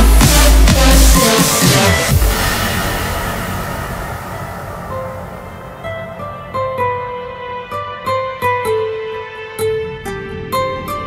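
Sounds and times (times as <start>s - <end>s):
hardcore electronic dance music: 0.0s - 7.6s
low synth rumble: 0.0s - 7.6s
clean synth note: 0.0s - 7.7s
noise swell: 0.0s - 7.8s.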